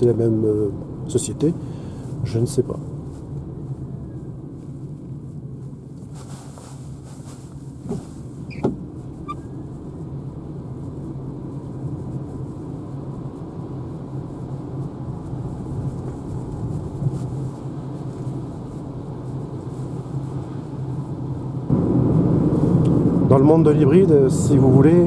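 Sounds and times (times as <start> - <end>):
tyre and road rumble: 0.0 - 25.0.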